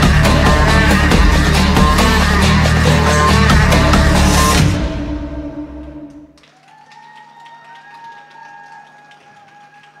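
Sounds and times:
audience clapping: 6.0 - 10.0.

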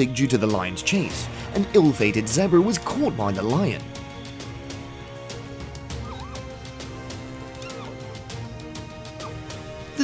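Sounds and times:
background music with light percussion: 0.0 - 10.0
zebra whinnying calls: 5.8 - 8.4, 9.0 - 9.6.

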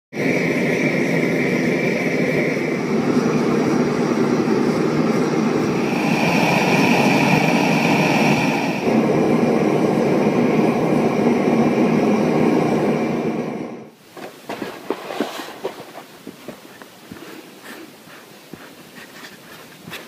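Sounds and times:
gas burner roaring: 0.1 - 20.0.

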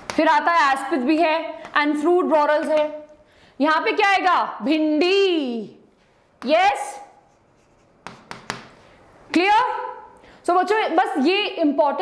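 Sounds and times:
pen strokes on screen: 7.1 - 8.5
light pen taps: 8.0 - 8.8.

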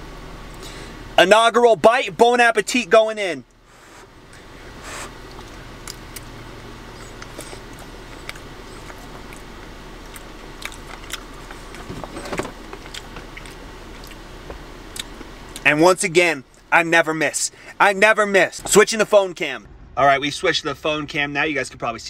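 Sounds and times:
person chewing pasta: 4.8 - 11.9, 12.8 - 14.2, 14.9 - 15.6
small mouth clicks: 6.9 - 9.5, 14.9 - 15.6.

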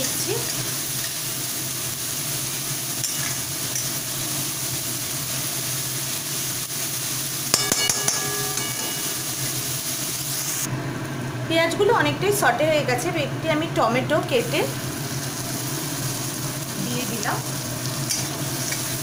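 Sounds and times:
onions sizzling in hot oil: 0.0 - 19.0
spatula metallic clink: 7.5 - 9.6.

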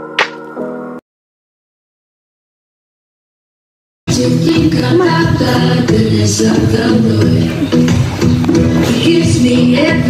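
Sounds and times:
sharp snap-like hit: 0.2 - 0.4.

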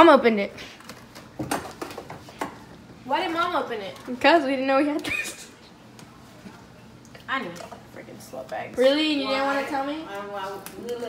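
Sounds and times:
kitchen items clicking on counter: 0.8 - 2.6.

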